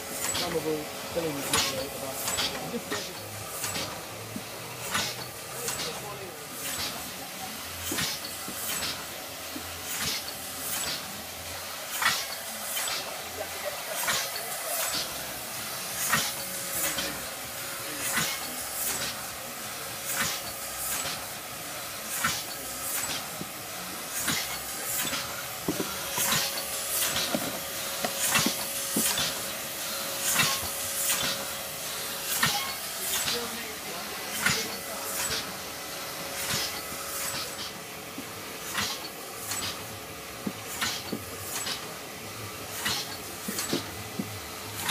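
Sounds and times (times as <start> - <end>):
hissing bursts of air: 0.0 - 44.9
machine clatter: 0.0 - 44.9.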